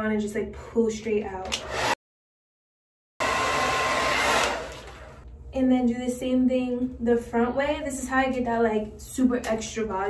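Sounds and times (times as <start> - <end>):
hair dryer blowing: 1.4 - 2.0, 3.2 - 5.2.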